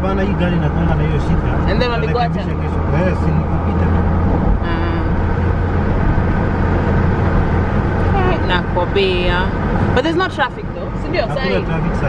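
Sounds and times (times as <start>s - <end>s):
car engine and tyre drone: 0.0s - 12.0s
person speaking: 11.1s - 11.7s.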